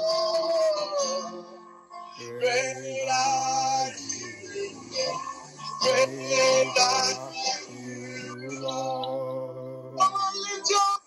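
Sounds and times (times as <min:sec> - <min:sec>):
man singing: 0:00.0 - 0:01.4, 0:02.2 - 0:11.0
electronic keyboard chords: 0:00.0 - 0:10.4.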